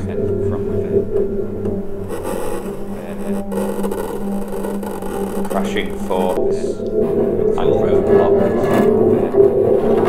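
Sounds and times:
low electronic drone: 0.0 - 10.0.

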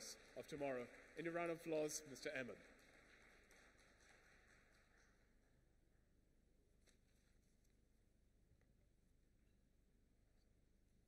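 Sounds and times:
faint audience applause: 0.0 - 5.5.

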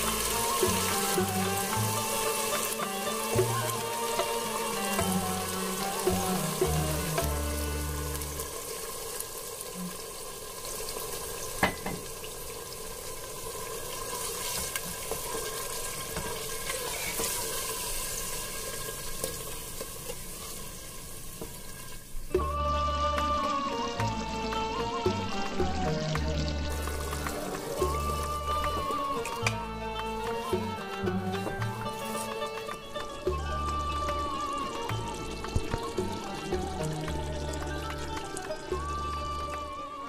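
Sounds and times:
meat sizzling in hot oil: 0.0 - 38.9.

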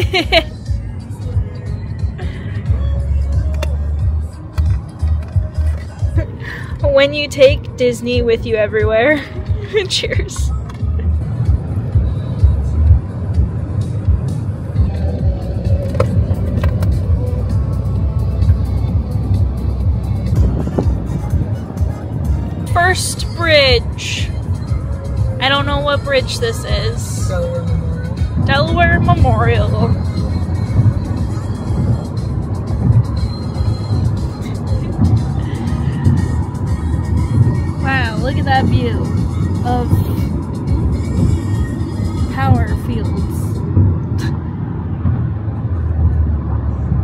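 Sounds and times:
background music: 0.0 - 44.2
car road and engine noise: 0.0 - 47.0.

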